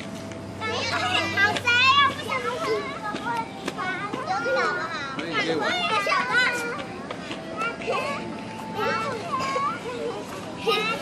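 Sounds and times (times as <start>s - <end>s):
children calling out at play: 0.6s - 11.0s.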